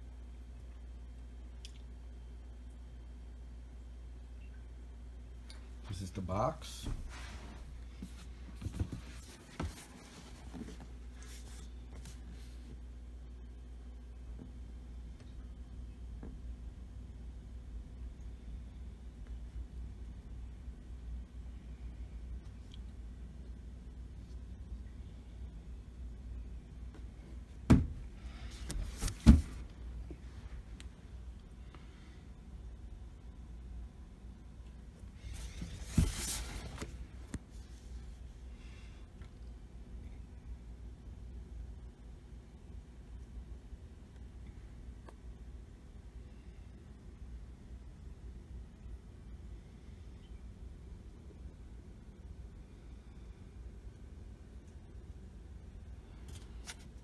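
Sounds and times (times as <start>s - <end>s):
steady low hum: 0.0s - 57.0s
box thump: 27.7s - 28.0s, 29.0s - 29.6s
knocks on cardboard box: 27.7s - 28.0s
cardboard box rustling: 35.4s - 36.9s.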